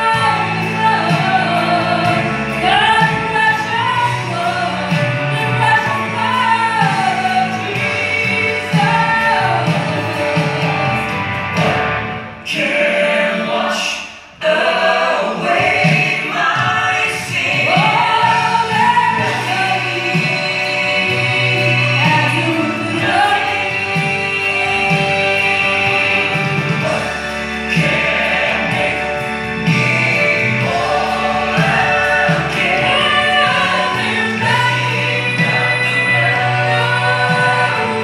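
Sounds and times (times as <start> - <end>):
woman singing into a microphone: 0.0 - 10.6, 32.8 - 38.0
choir singing: 0.0 - 38.0
gospel music accompaniment: 0.0 - 38.0.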